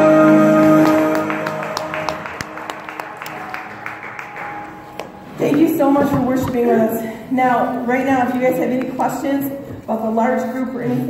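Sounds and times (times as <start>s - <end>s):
worship song held chord: 0.0s - 5.4s
hand claps and applause: 0.6s - 5.3s.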